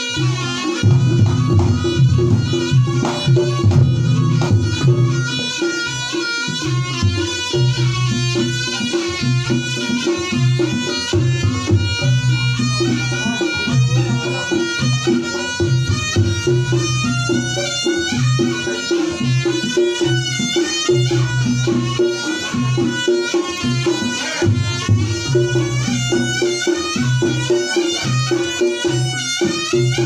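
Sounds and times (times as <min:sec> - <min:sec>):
high wind instrument melody: 0:00.0 - 0:30.0
hand drumming: 0:00.1 - 0:30.0.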